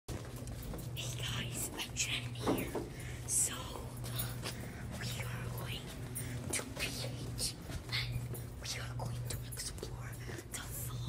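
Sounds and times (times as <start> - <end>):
steady low hum: 0.1 - 11.0
person whispering: 1.0 - 11.0.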